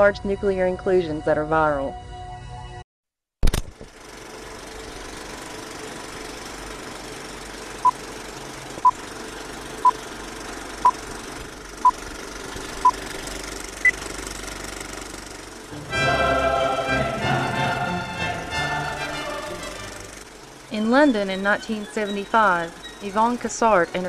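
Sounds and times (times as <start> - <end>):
film projector clattering: 3.5 - 15.7.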